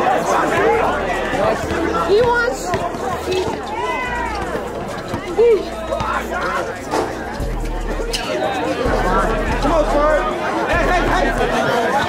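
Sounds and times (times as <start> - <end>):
crowd chatter: 0.0 - 12.0
sneakers squeaking on court: 0.5 - 8.8.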